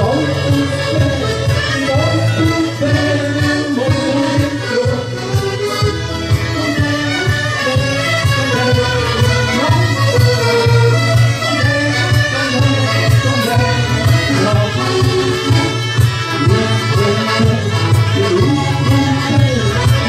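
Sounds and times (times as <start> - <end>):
accordion folk dance tune: 0.0 - 20.0.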